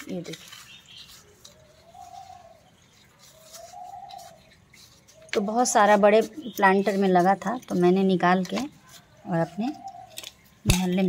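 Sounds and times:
dove cooing: 1.1s - 6.6s, 9.2s - 10.3s.

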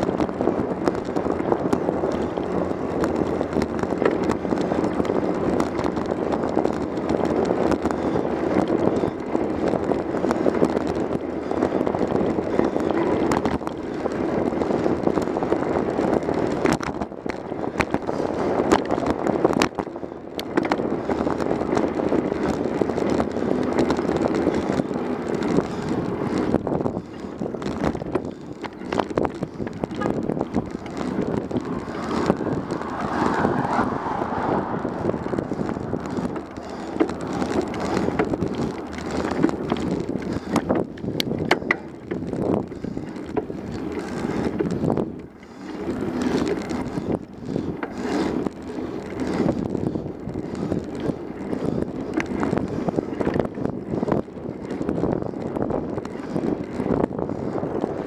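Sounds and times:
bicycle tyre and road noise: 0.0s - 58.0s
bike rattles and clicks: 0.0s - 58.0s
wind on microphone: 0.0s - 58.0s.

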